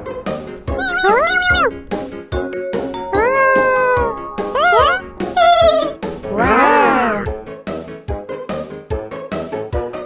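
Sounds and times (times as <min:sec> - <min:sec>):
children's background music: 0:00.0 - 0:10.0
high-pitched cartoon voice: 0:00.7 - 0:01.8, 0:03.1 - 0:07.3.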